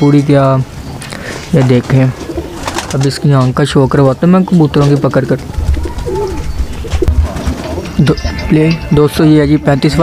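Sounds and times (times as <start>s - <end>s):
pigeons cooing: 0.9s - 3.4s, 4.5s - 8.0s.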